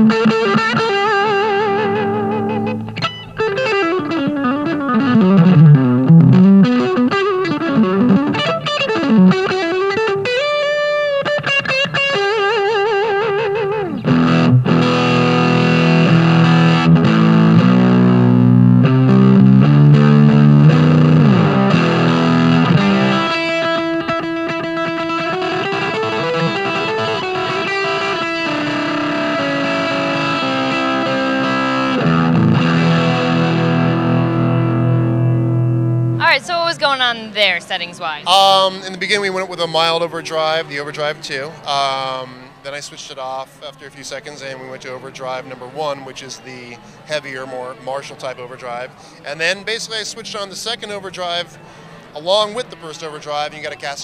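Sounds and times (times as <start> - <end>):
overdriven electric guitar: 0.0 - 39.2.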